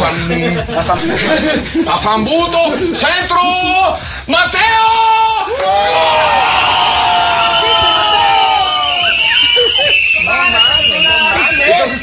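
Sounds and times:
crowd cheering: 0:05.4 - 0:12.0.

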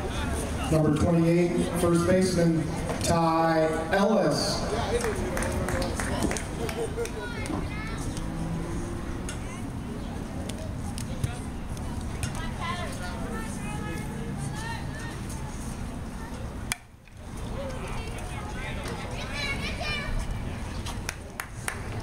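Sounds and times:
spectators chattering: 0:00.0 - 0:22.0.

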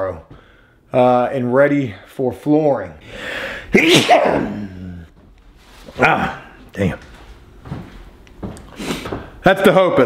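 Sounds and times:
man clearing throat: 0:03.7 - 0:05.1
man groaning: 0:03.7 - 0:05.1, 0:06.0 - 0:06.6.

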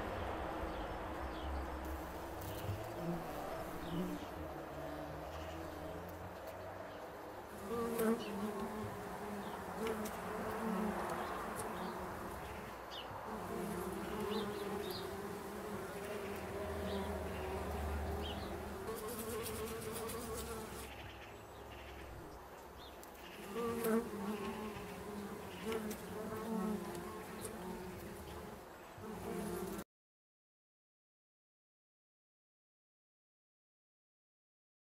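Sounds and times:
bumblebees buzzing: 0:00.1 - 0:06.5, 0:07.3 - 0:21.1, 0:23.3 - 0:29.8.

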